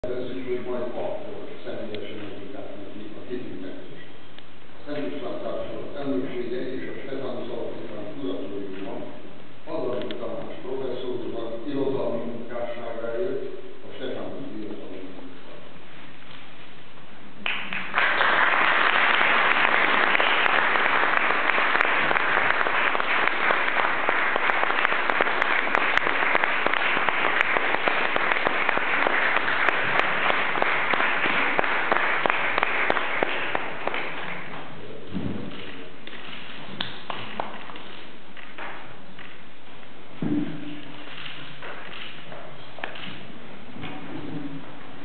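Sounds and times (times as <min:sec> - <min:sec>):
audience clapping: 0:17.4 - 0:34.8, 0:35.5 - 0:39.4.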